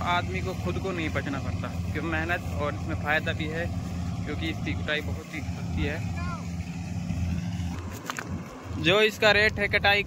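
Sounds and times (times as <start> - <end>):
combine harvester engine drone: 0.0 - 10.0.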